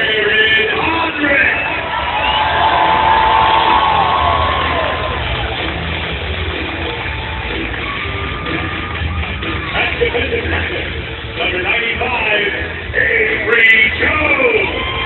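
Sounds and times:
crowd cheering: 0.1s - 12.6s, 13.2s - 15.0s
music with pulsing bass beat: 3.2s - 15.0s.

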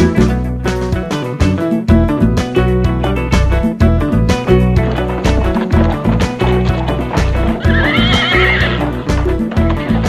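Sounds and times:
music with steady beat: 0.0s - 10.0s
horse whinnying: 4.9s - 10.0s.

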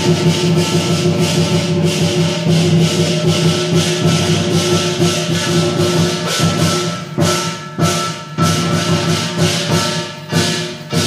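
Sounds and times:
cymbals clashing: 0.0s - 11.0s
metallic ringing: 0.0s - 11.0s.

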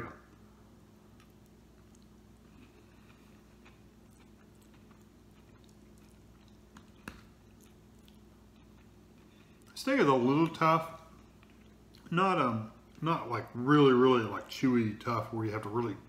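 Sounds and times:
low room hum: 0.0s - 16.0s
faint chewing of noodles: 1.1s - 13.1s.

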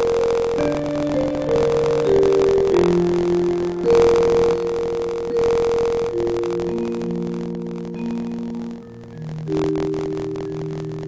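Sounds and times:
slow piano chords: 0.0s - 11.0s.

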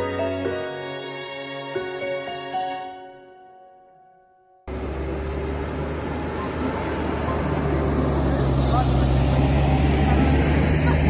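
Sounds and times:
road train engine humming: 4.7s - 11.0s.

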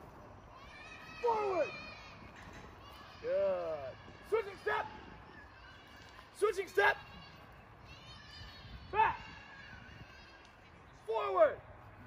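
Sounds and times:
low outdoor background: 0.0s - 12.0s
man calling out command: 3.2s - 5.0s, 6.4s - 7.0s, 8.9s - 9.2s, 11.0s - 11.6s.

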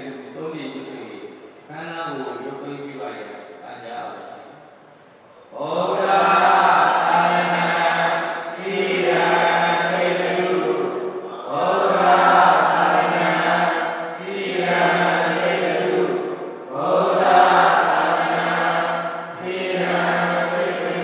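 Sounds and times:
chanting in unison: 5.5s - 21.0s.

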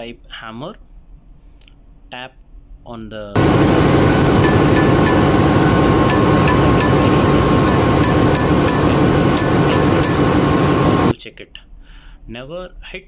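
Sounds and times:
loud steady machinery noise: 3.4s - 11.1s.

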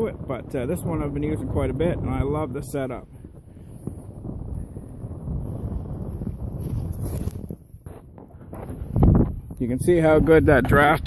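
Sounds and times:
wind on microphone: 0.0s - 11.0s
wood fire burning: 0.0s - 11.0s.

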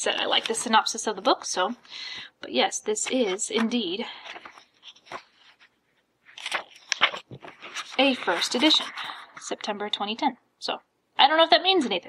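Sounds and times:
paper pages rustling: 0.1s - 1.0s, 2.9s - 9.7s.

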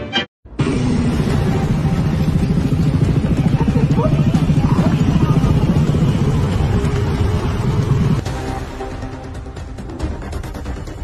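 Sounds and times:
street noise: 0.0s - 11.0s
vehicle engines rumbling: 0.5s - 8.2s.

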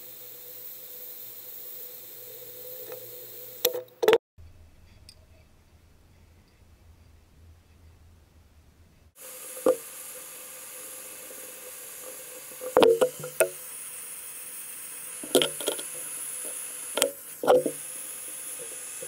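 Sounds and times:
gas torch hissing: 0.0s - 3.8s, 9.1s - 19.0s.

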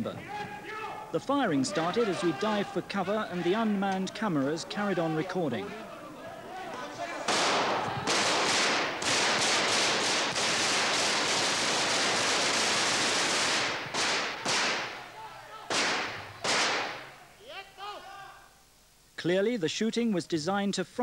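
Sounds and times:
automatic gunfire: 7.3s - 15.0s, 15.7s - 17.1s.

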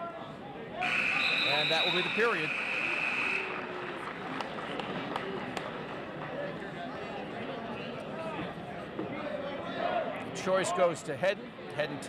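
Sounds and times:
crowd chatter: 0.0s - 12.0s
scoreboard buzzer: 0.9s - 3.6s.

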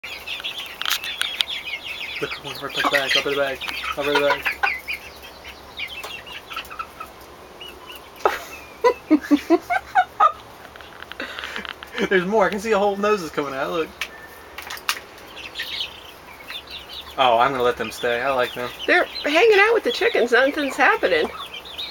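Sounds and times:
small birds chirping: 0.0s - 21.9s
sharp clicks: 10.7s - 11.9s.

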